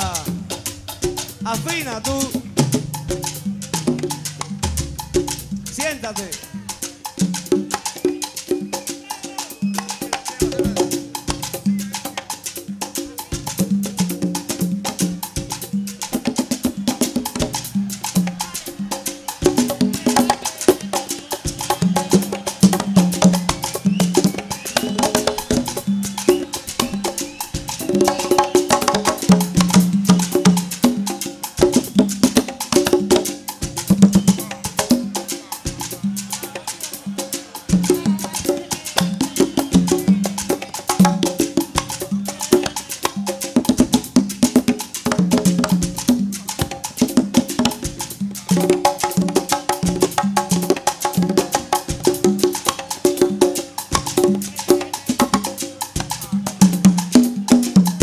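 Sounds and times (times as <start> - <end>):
conga drums playing fast: 0.0 - 58.0.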